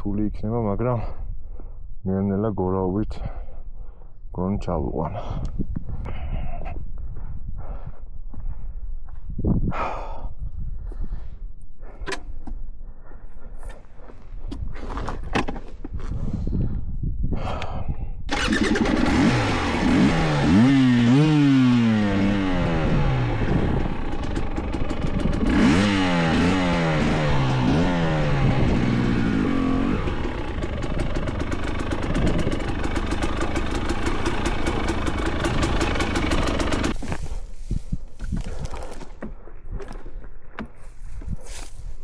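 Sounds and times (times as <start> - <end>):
motorcycle engine revving: 18.3 - 37.0.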